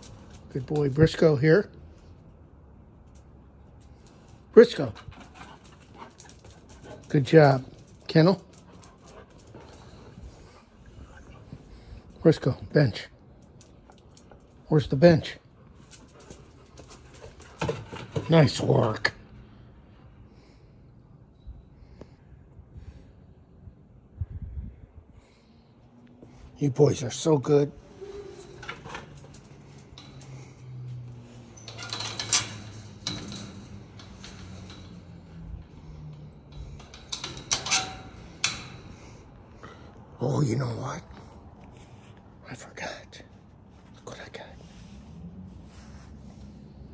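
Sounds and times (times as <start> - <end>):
dog claws tapping on concrete: 3.0 - 10.2, 13.3 - 14.7
metal clinks of gate latch: 28.4 - 39.0.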